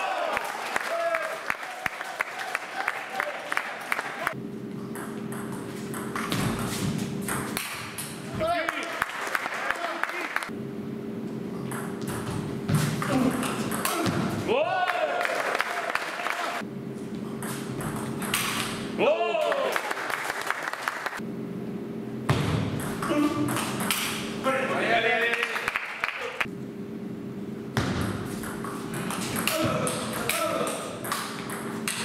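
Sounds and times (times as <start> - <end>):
low hum of hall: 0.0 - 32.0.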